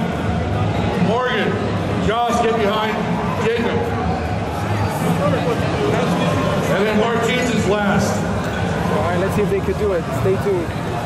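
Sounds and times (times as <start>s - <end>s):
busy hall din: 0.0s - 11.0s.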